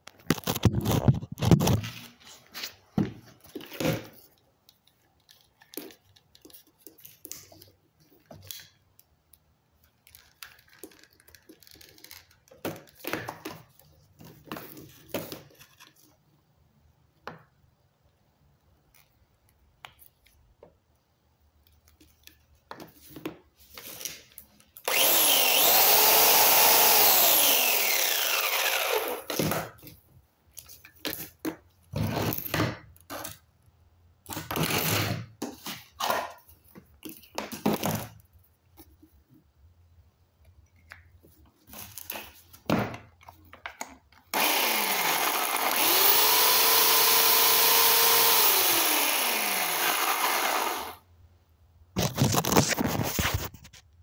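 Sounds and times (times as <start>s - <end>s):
tools and cords being handled: 0.0s - 16.3s, 21.6s - 33.5s, 34.2s - 39.4s, 52.0s - 53.9s
electric chainsaw running: 24.9s - 29.3s, 44.4s - 51.0s.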